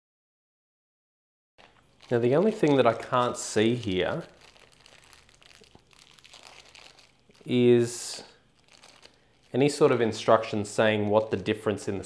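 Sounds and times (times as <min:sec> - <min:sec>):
plastic parts crinkling and rustling: 0:01.6 - 0:11.6.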